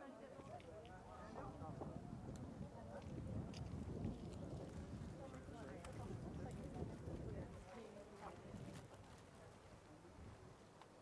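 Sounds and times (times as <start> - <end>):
faint voices talking quietly: 0.0 - 11.0.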